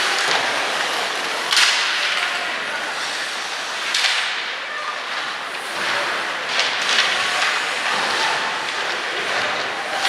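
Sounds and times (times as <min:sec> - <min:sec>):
arena noise: 0:00.0 - 0:10.0
hockey stick striking puck: 0:01.5 - 0:02.2, 0:03.8 - 0:04.5
skates hissing on ice: 0:02.8 - 0:04.4.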